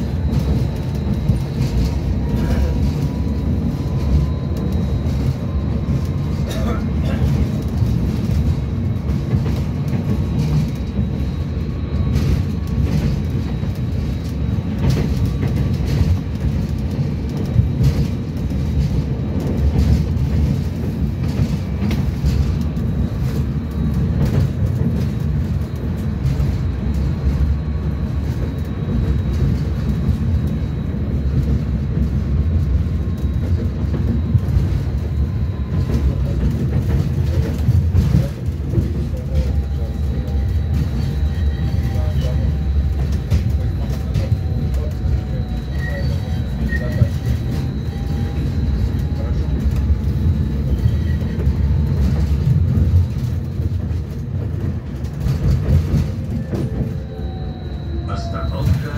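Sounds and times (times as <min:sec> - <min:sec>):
tram wheels rumbling on rail: 0:00.0 - 0:58.9
faint high whine: 0:56.9 - 0:58.9.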